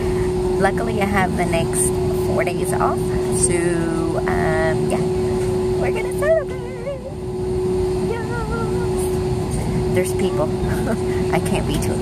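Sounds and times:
airliner engine rumble: 0.0 - 12.0
woman singing a wavering note: 0.6 - 10.6.

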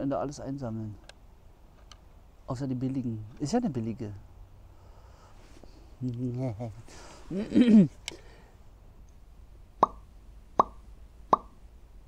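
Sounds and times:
cartoon plop effects: 9.8 - 10.0, 10.6 - 11.5.

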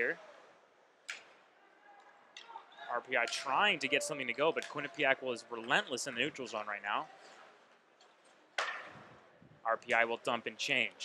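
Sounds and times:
faint arena background noise: 0.0 - 11.0.

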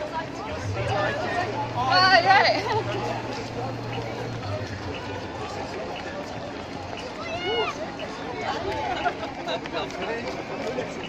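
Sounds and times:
runners' footsteps on cobbles: 0.0 - 11.0
spectators chatting: 0.0 - 11.0.

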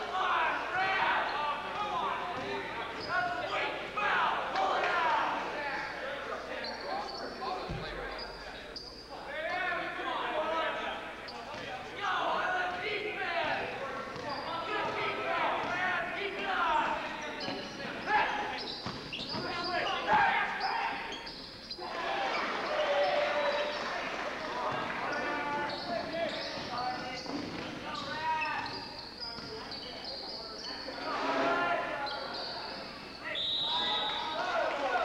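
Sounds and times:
voices shouting in echoing hall: 0.0 - 35.0.

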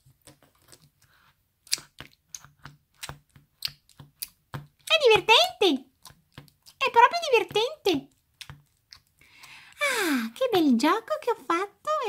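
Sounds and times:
slime squelching and popping: 1.6 - 9.7.

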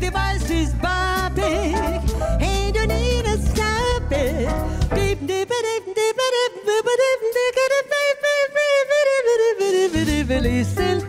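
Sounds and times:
full band playing: 0.0 - 5.6, 9.6 - 11.0
woman singing with vibrato: 0.0 - 11.0.

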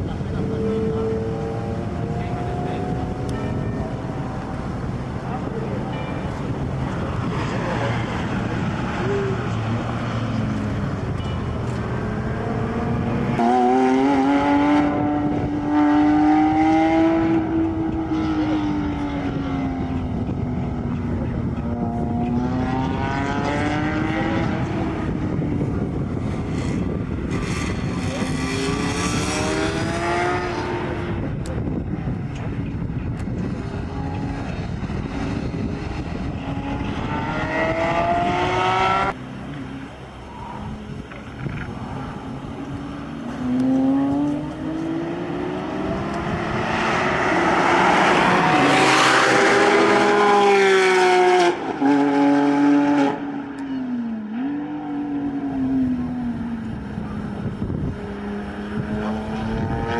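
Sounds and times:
racing car engines: 0.0 - 59.9.

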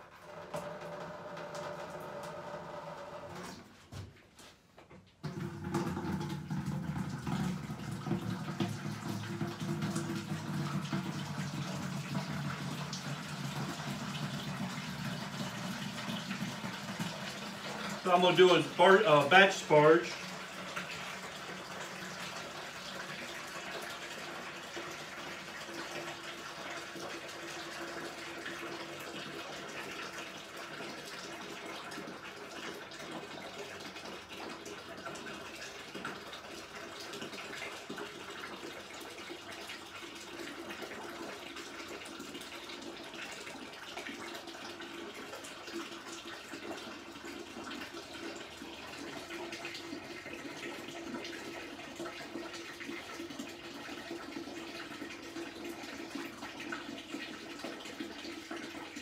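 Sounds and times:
liquid pouring stream: 0.0 - 3.6, 5.2 - 59.0.

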